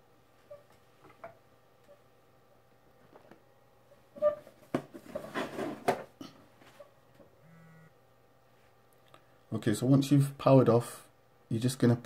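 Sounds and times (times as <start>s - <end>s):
phone vibrating buzz: 7.4s - 8.0s.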